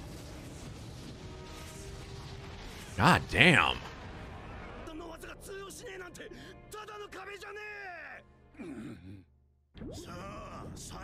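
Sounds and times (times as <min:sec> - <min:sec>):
background music: 0:02.8 - 0:04.2, 0:04.9 - 0:09.2
wordless male vocal sound: 0:03.0 - 0:03.9.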